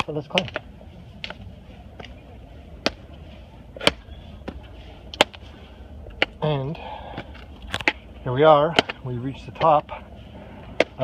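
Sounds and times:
shoe tapping on stone steps: 0.0 - 5.4, 6.0 - 10.0, 10.7 - 11.0
low steady rumble: 0.0 - 11.0.

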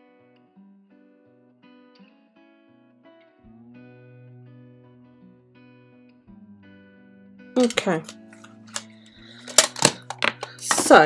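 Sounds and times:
faint background music: 0.0 - 11.0
metal lid snapping closed clicks: 7.6 - 10.9
metal tin lid tap: 7.6 - 11.0.

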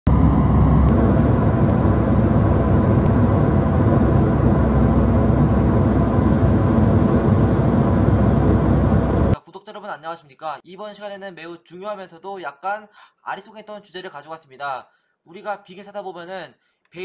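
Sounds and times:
jet engine and airflow rush: 0.1 - 9.4.

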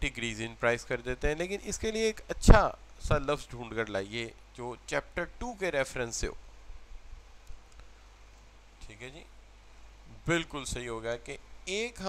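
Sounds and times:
low steady hum: 0.0 - 12.0
faint click: 7.4 - 8.5.

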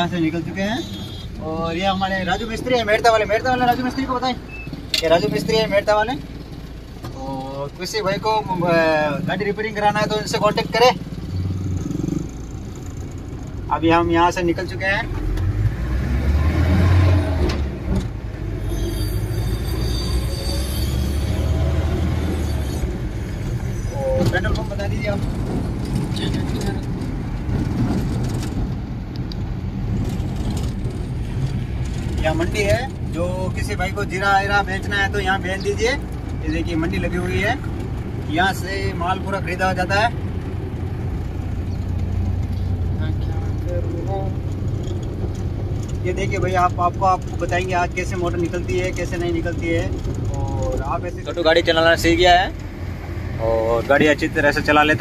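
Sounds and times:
vehicle engine and road rumble: 0.0 - 55.0.

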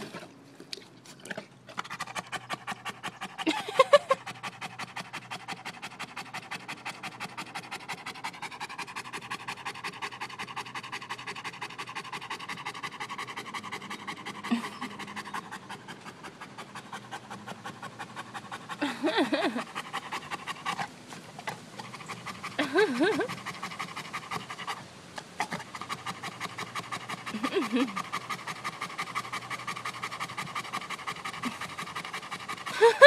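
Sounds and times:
dog vocal sound: 1.1 - 24.8, 25.4 - 33.0
dog panting: 1.3 - 33.0.

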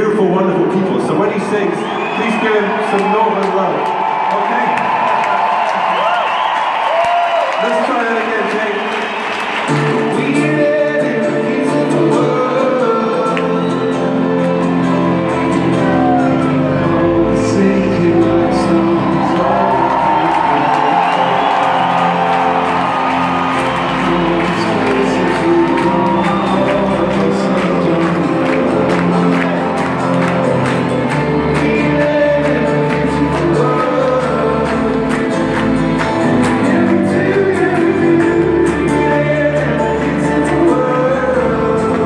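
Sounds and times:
crowd noise: 0.0 - 42.0
live rock band playing: 9.5 - 42.0
lead vocal singing: 9.7 - 14.4, 15.4 - 42.0.

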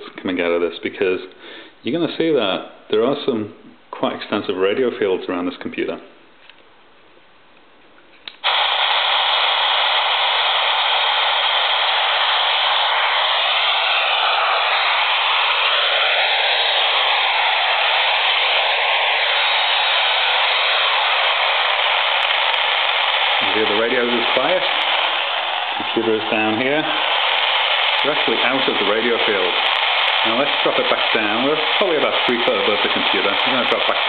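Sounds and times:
radio static hiss: 8.3 - 34.0
wandering radio whistles: 8.4 - 34.0.

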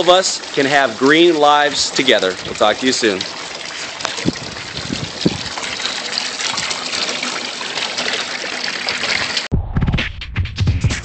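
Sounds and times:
water pouring and splashing: 0.0 - 9.5.

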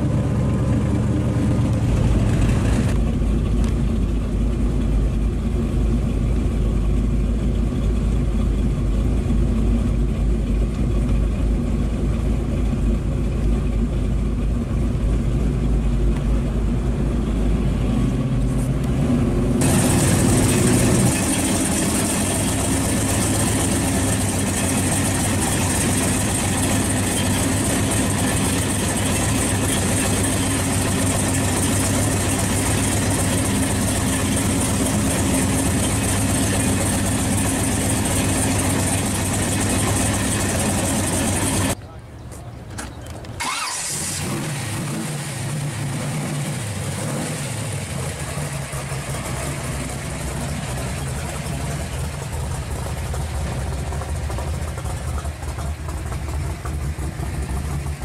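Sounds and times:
engine idling: 0.0 - 58.0
second engine idling quietly: 0.0 - 58.0.

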